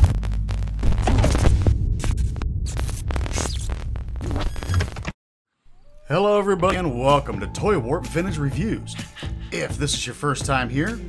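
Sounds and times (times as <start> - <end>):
glitchy crackling clicks: 0.0 - 5.2.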